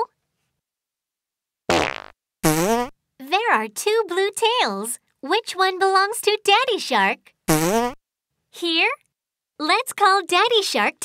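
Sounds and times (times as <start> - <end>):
cartoon fart sound effect: 1.7 - 3.0, 7.5 - 8.0.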